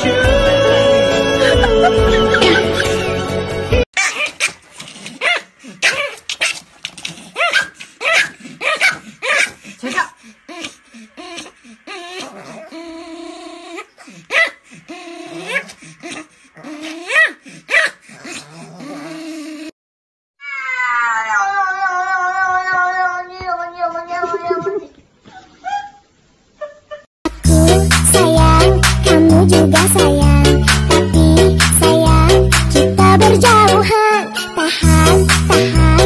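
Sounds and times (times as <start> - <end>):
small dogs yapping: 4.0 - 19.7, 20.4 - 27.1
cat yowling: 20.4 - 26.0.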